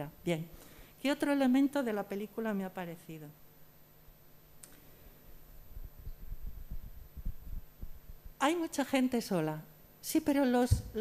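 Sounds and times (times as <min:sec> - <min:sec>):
soft low thumps: 0:05.7 - 0:08.4.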